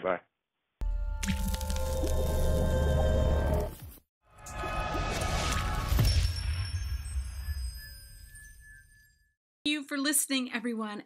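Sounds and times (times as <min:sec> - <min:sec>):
liquid drip and splat: 0:01.2 - 0:02.5.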